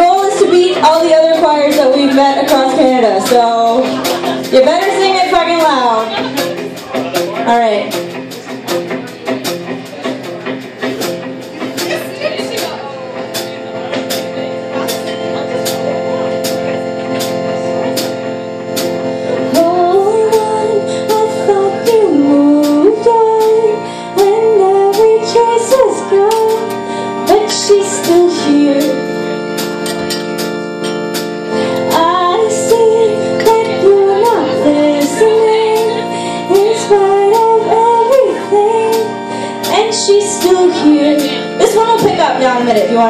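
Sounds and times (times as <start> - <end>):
woman singing: 0.0 - 6.3, 19.5 - 29.2, 31.7 - 43.0
keyboard chords: 0.0 - 43.0
steady drum beat: 0.0 - 43.0.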